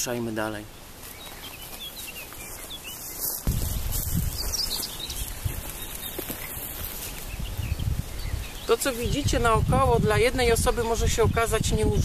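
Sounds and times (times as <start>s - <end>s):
small birds chirping: 0.0s - 12.0s
walking through tall grass: 0.9s - 8.5s.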